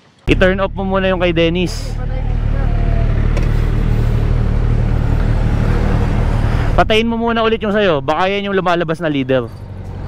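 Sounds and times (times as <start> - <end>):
motorcycle engines idling: 0.3 - 10.0.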